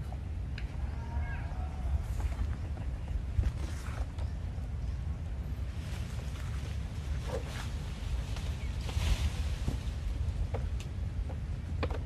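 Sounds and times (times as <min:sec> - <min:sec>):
steady low rumble: 0:00.0 - 0:12.0
motorcycle creaking and knocking: 0:10.5 - 0:12.0.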